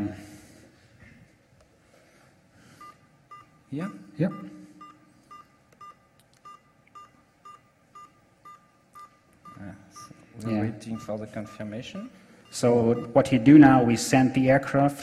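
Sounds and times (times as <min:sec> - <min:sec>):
short computer beeps: 0:02.8 - 0:13.4.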